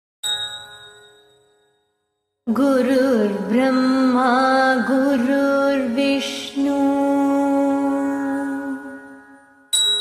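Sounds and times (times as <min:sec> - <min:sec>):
bell ringing: 0:00.2 - 0:01.8, 0:09.7 - 0:10.0.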